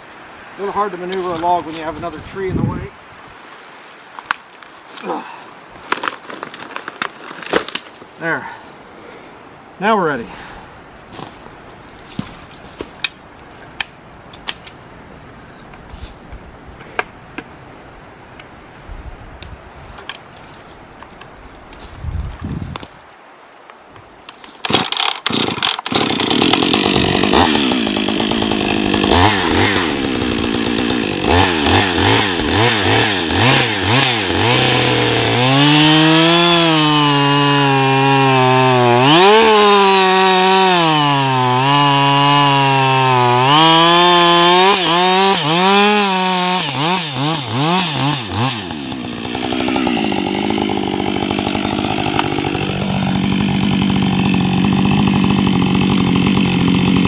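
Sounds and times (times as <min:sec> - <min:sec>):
chainsaw revving and cutting: 0:24.7 - 0:57.0.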